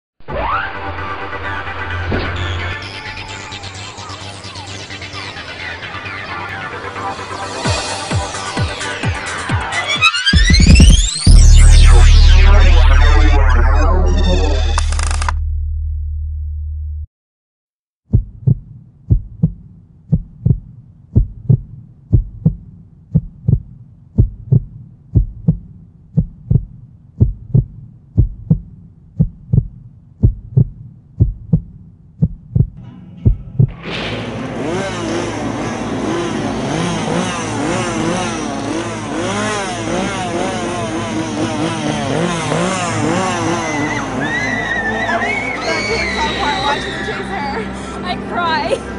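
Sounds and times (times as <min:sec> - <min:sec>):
dense soundtrack music: 0:00.2 - 0:17.1, 0:18.6 - 0:48.9
heartbeat double thump: 0:18.1 - 0:33.8.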